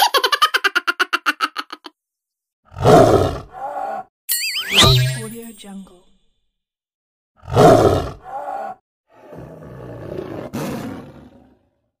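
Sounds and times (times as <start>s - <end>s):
tiger roaring: 2.7s - 4.0s, 7.4s - 11.8s.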